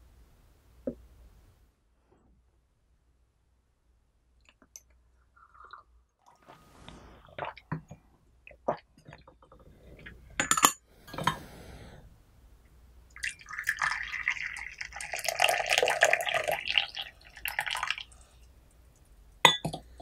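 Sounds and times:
tea pouring into glass cup: 0:13.1 - 0:18.3
glass clinks: 0:19.5 - 0:19.8.

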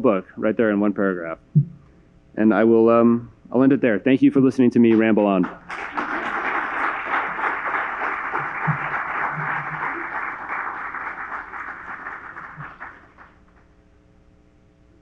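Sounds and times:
audience applauding: 0:04.9 - 0:13.6.

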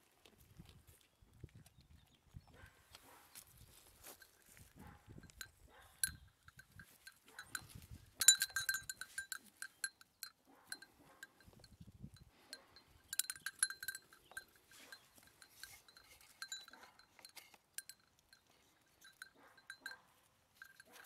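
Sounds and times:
goat bell jangling: 0:03.3 - 0:21.0.

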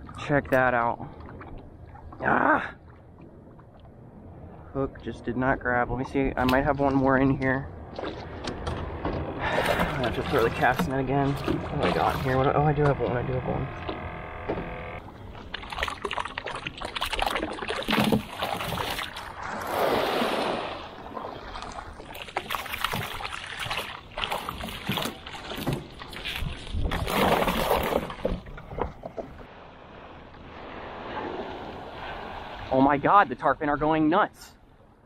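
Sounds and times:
water splashing against boat: 0:00.0 - 0:34.1
handling knocks in boat: 0:08.0 - 0:15.6.

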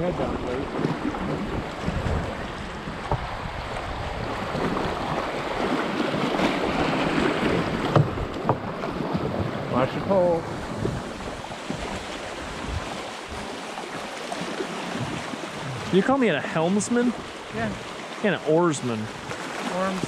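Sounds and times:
river water rushing: 0:00.0 - 0:20.0
sharp knocks on boat: 0:00.8 - 0:03.4, 0:07.3 - 0:09.6, 0:14.5 - 0:15.9.

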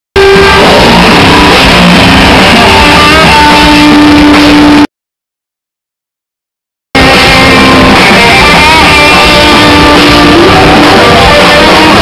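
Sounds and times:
hard rock band playing live: 0:00.2 - 0:04.9, 0:07.0 - 0:12.0.

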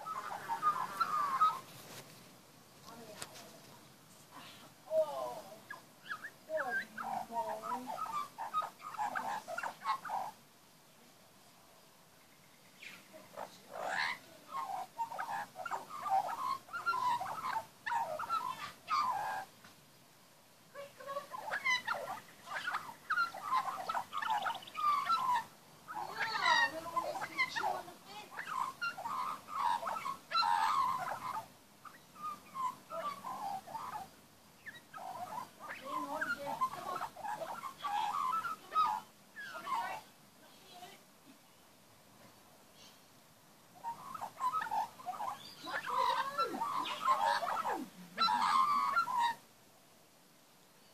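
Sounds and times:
magpie warbling: 0:00.0 - 0:01.7, 0:04.9 - 0:10.4, 0:12.8 - 0:19.5, 0:20.8 - 0:40.1, 0:43.8 - 0:49.4.

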